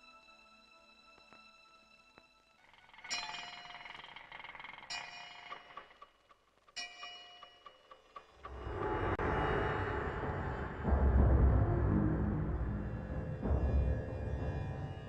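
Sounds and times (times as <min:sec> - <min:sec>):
ringing bell-like strikes: 0:03.1 - 0:04.1, 0:04.9 - 0:05.8, 0:06.8 - 0:08.5
low swell of orchestral music: 0:08.5 - 0:15.0.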